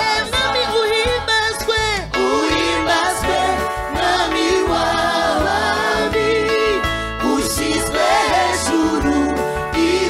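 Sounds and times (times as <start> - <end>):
women's gospel choir singing: 2.2 - 10.0.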